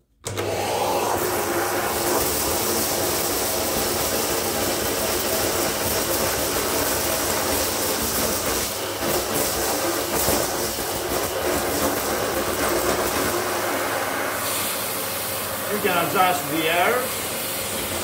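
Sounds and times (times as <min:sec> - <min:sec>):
vacuum cleaner running: 0:00.2 - 0:18.0.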